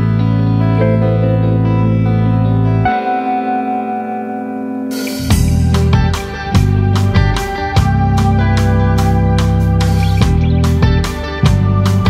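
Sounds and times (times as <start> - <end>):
guitar chord with reverb: 0.0 - 12.0
drums: 4.9 - 12.0.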